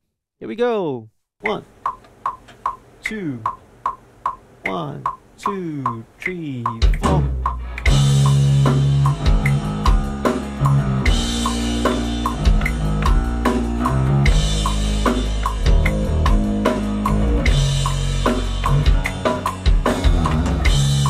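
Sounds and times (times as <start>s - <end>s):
drum kit: 1.4s - 21.0s
electric bass groove: 6.6s - 21.0s.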